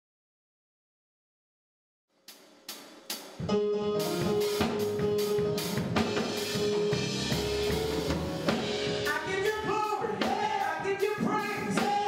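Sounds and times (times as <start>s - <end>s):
drum-led music: 2.3s - 12.0s.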